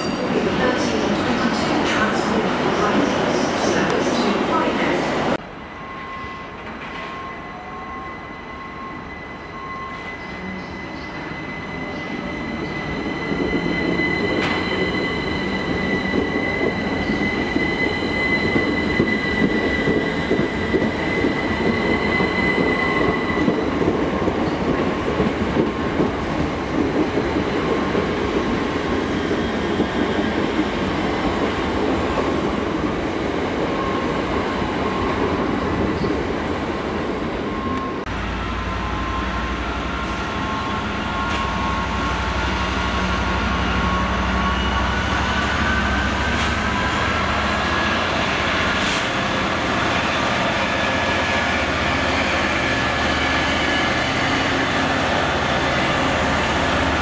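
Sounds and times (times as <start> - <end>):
train coaches rumbling by: 0.0 - 57.0
train high-pitched whine: 5.5 - 23.9, 37.5 - 57.0.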